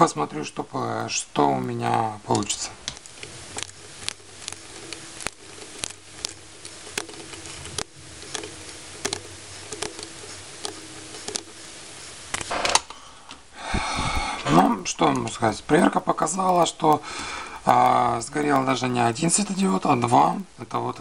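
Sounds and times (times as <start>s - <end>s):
faint steady hum: 0.0s - 21.0s
handling noise: 1.6s - 17.0s
test probe tips clicking: 1.8s - 13.4s, 14.4s - 20.2s.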